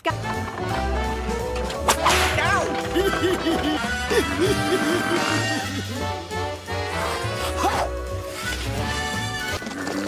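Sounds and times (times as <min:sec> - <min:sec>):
cartoon music with bass line: 0:00.0 - 0:10.0.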